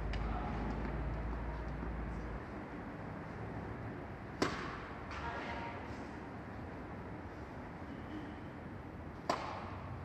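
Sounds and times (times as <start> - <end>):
steady background hum: 0.0 - 10.0
tennis racket striking ball: 4.3 - 4.9, 9.2 - 9.9.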